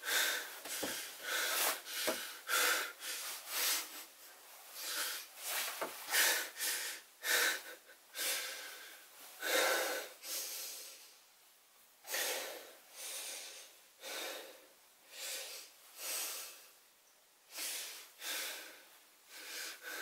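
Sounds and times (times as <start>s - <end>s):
man breathing heavily: 0.0s - 11.2s, 12.0s - 16.7s, 17.5s - 20.0s.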